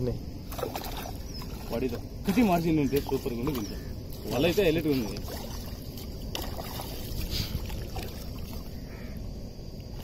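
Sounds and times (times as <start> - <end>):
small splashes: 0.4 - 9.2
water sloshing and lapping: 0.4 - 10.0.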